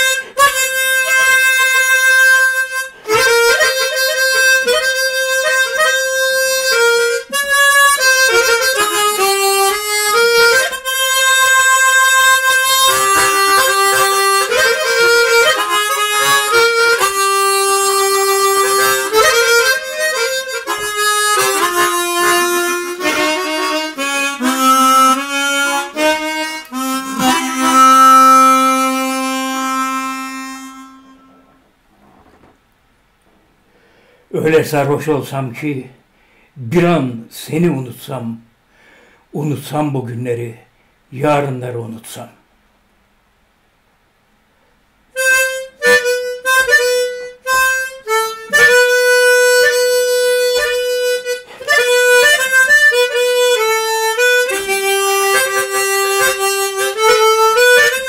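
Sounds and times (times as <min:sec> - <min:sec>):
harmonica melody: 0:00.0 - 0:31.6, 0:45.1 - 0:58.0.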